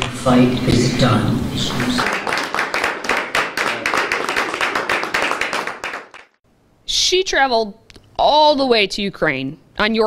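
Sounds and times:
group applauding: 1.6s - 6.4s.

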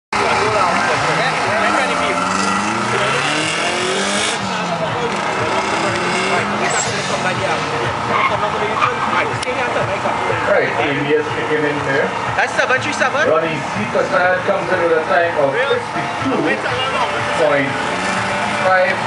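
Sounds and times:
car engine revving: 0.1s - 19.0s.

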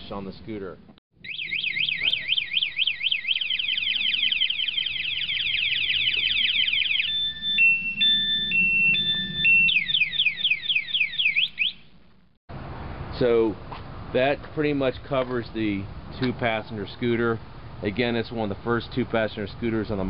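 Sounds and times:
electronic alarm siren: 1.2s - 12.0s.

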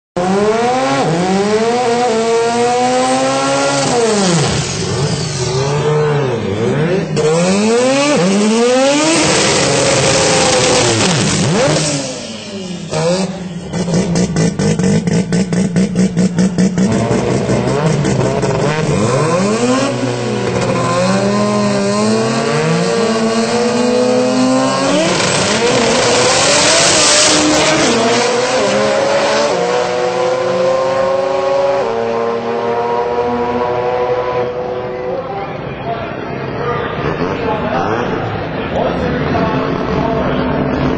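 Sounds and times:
drag racing car engines: 0.2s - 40.9s.

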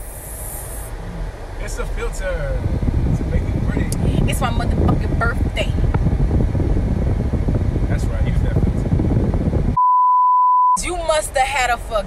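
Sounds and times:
car cabin rumble: 0.0s - 9.8s.

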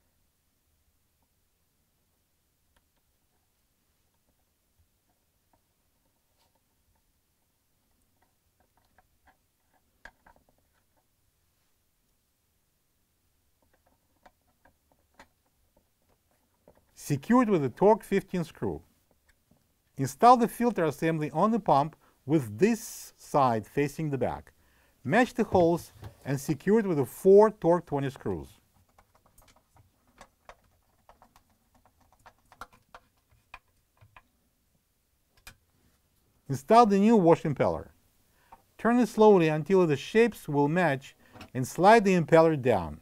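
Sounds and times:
plastic parts clicking: 28.8s - 34.3s.

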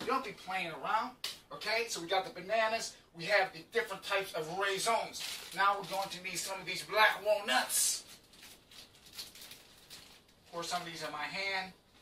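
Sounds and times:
small bag rustling: 5.1s - 6.2s, 8.0s - 10.9s.

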